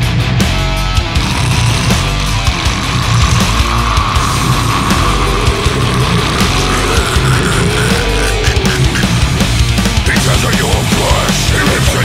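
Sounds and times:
death metal music: 0.0s - 12.0s.

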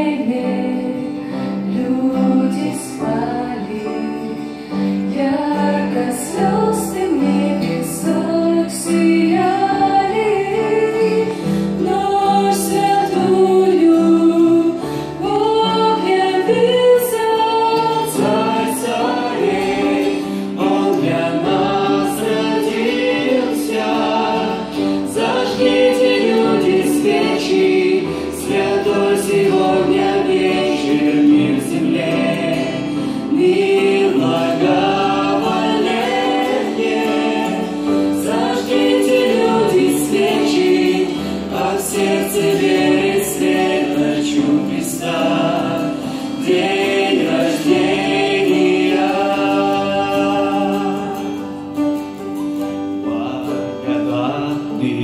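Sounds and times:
acoustic guitar: 0.0s - 55.0s
mixed vocal group singing: 0.0s - 55.0s.

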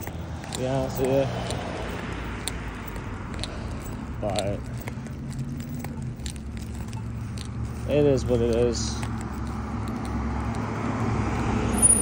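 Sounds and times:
steady low street rumble: 0.0s - 12.0s.

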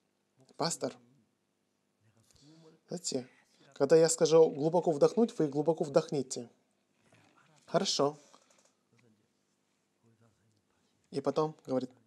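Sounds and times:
man speaking through microphone: 0.6s - 1.0s, 2.2s - 6.5s, 7.4s - 8.2s, 11.1s - 12.0s.

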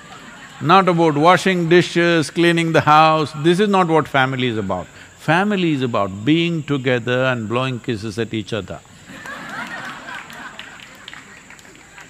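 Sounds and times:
people laughing softly: 0.0s - 2.5s, 8.9s - 12.0s.

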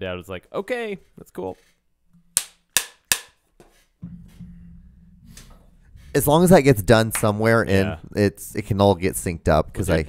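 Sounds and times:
low steady hum: 4.0s - 9.3s.

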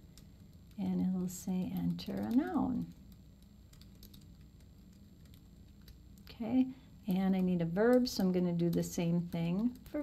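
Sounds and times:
low room hum: 0.0s - 10.0s
keyboard typing: 1.6s - 6.3s.

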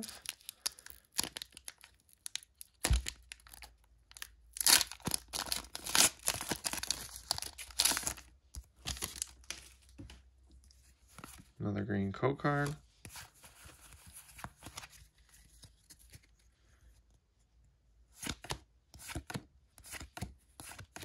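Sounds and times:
foil wrapper tearing: 0.0s - 8.2s.

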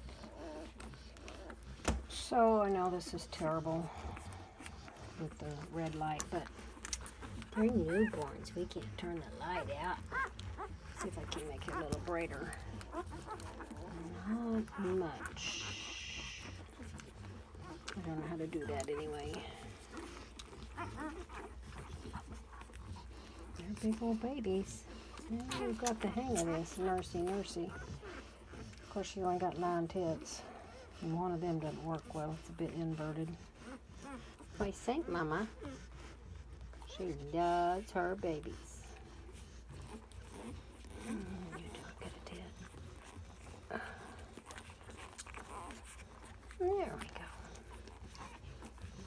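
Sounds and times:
puppies squeaking: 0.0s - 49.0s.

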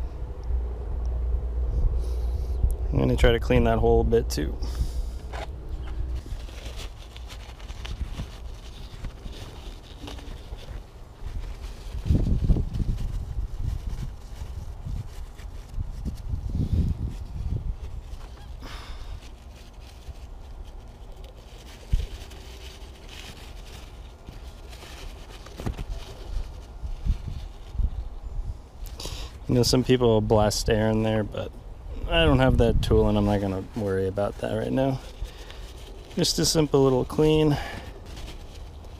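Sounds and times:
wind rumble on microphone: 0.0s - 38.9s
handling knocks and rubbing: 5.2s - 16.3s, 19.2s - 27.9s.

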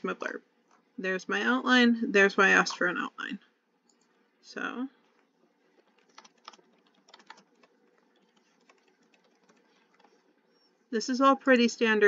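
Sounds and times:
typing on computer keyboard: 6.0s - 10.2s.

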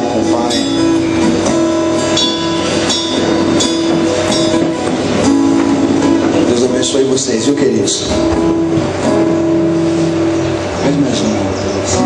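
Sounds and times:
slow guitar worship music: 0.0s - 12.0s.

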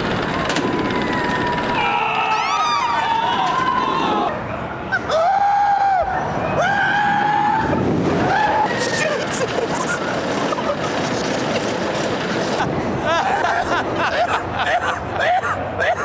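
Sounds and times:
rushing noise of moving ride: 0.0s - 16.0s
riders screaming: 0.8s - 4.3s, 4.9s - 10.2s.

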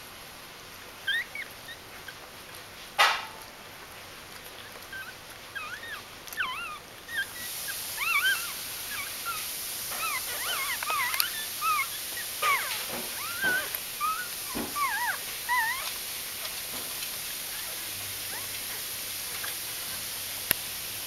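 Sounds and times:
steady hiss: 0.0s - 21.0s
puppies squeaking and whimpering: 1.0s - 2.3s, 4.4s - 20.2s.

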